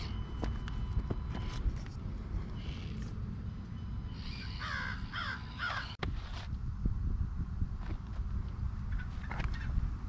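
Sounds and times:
low steady rumble: 0.0s - 10.0s
crow cawing: 4.4s - 6.0s.

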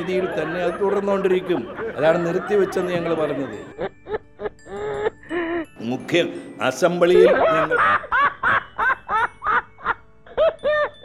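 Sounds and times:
man laughing comically: 0.0s - 5.7s, 7.1s - 11.0s
music: 0.0s - 11.0s.

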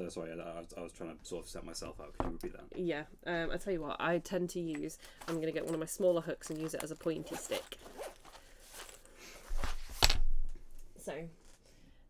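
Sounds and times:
fabric pouch rustling: 5.1s - 10.2s.

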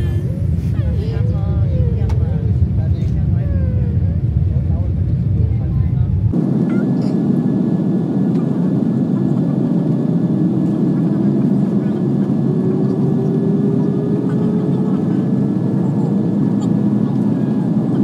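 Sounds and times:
jet airliner cabin roar: 0.0s - 18.0s
jet engine whine rising: 6.3s - 18.0s.

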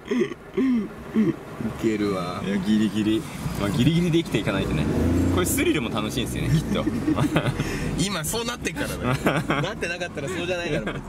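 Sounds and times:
people talking: 1.6s - 11.0s
people laughing: 6.4s - 7.9s, 8.7s - 11.0s.

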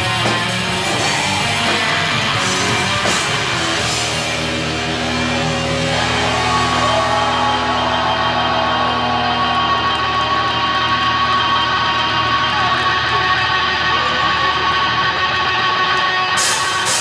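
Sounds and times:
metal band playing: 0.0s - 17.0s.

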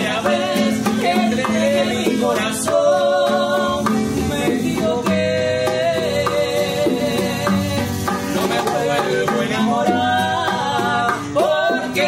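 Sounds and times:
bongos: 0.0s - 12.0s
men singing in harmony: 0.0s - 12.0s
strummed acoustic guitar: 0.0s - 12.0s
woman singing: 0.0s - 12.0s.

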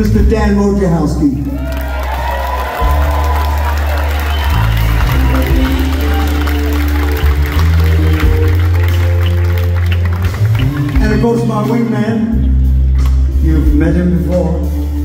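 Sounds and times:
live rock band playing: 1.8s - 15.0s.

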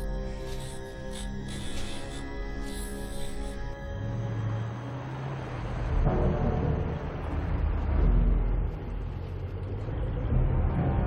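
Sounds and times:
dark film score music: 0.0s - 11.0s.

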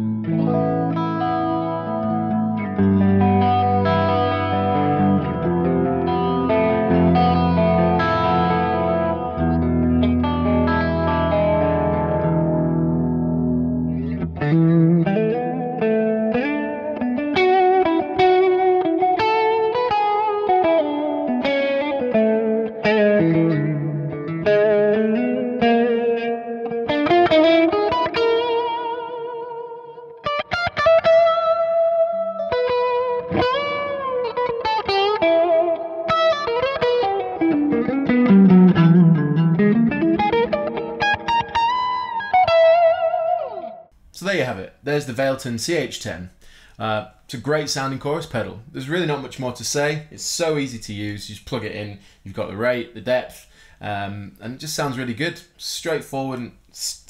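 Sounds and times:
electric guitar with chorus effect: 0.0s - 43.9s.

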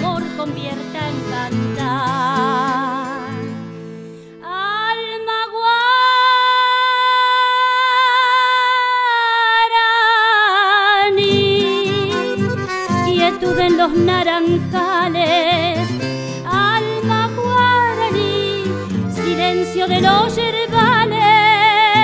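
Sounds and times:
guitar strumming: 0.0s - 4.6s, 11.2s - 22.0s.

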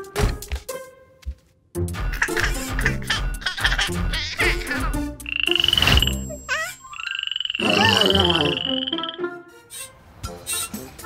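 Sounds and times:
cartoon frog croaking trills: 5.2s - 9.2s.

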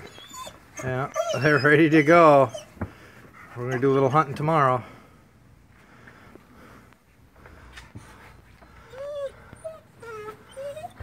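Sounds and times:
dog whining: 0.0s - 2.8s, 8.0s - 11.0s
faint shuffling: 0.0s - 11.0s.

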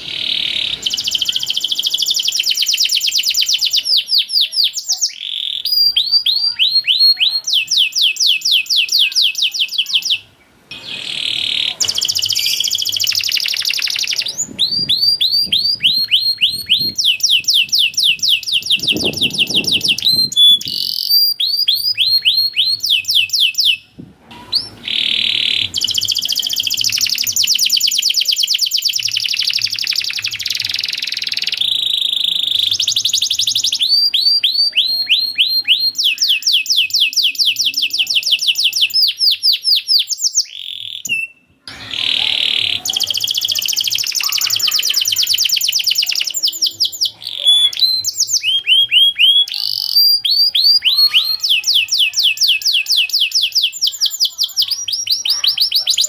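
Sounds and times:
canary singing trills: 0.0s - 56.0s.

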